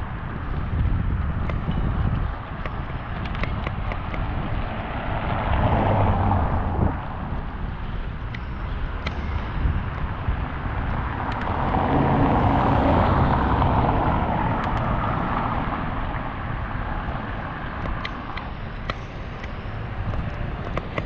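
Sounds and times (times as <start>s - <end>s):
bicycle road rumble: 0.0s - 21.0s
wind rushing over microphone: 0.0s - 21.0s.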